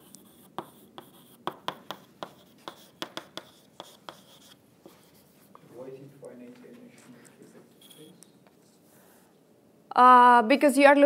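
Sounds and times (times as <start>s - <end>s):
chalk tapping on blackboard: 0.0s - 5.7s.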